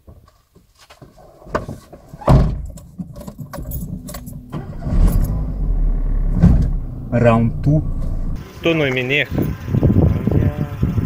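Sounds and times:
keys jangling: 2.6s - 4.5s
car engine starting and idling: 3.2s - 11.0s.

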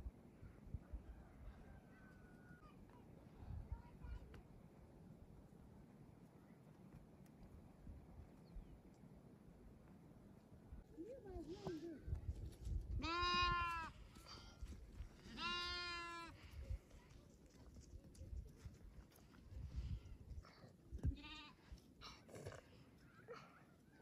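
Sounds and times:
baby goat bleating: 13.0s - 13.9s, 15.3s - 16.3s, 21.0s - 21.5s.

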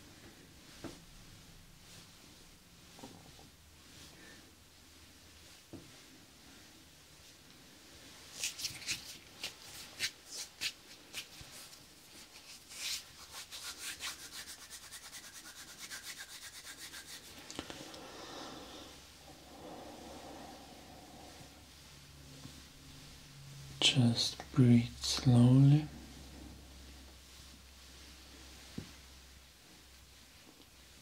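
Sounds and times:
palms rubbing together: 8.0s - 31.0s.

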